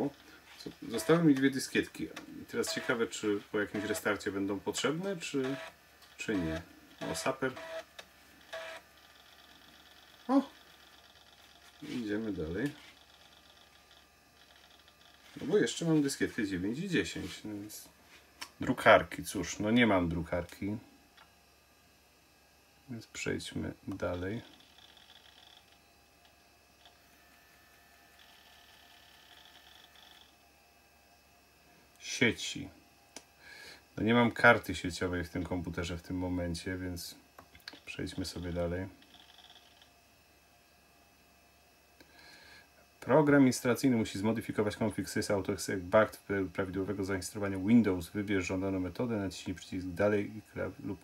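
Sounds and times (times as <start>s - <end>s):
faint low hum: 0.0s - 51.0s
floppy drive buzzing: 0.0s - 51.0s.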